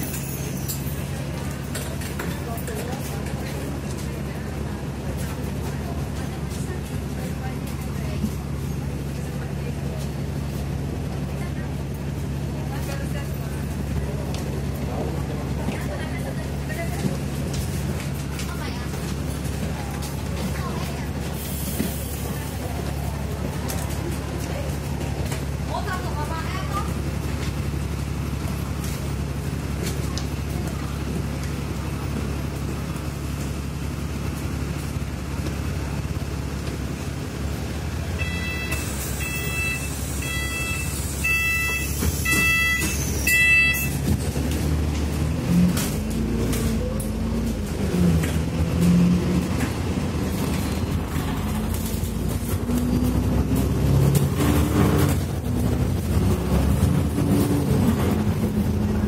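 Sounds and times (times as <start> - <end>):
bus diesel engine humming: 0.0 - 59.0.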